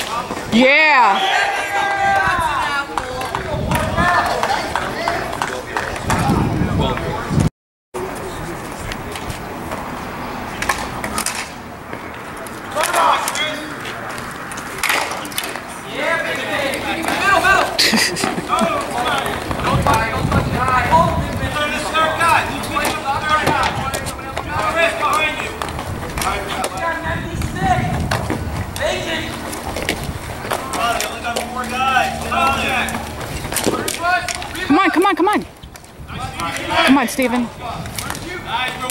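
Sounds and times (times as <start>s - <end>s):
spectators chatting: 0.0s - 38.9s.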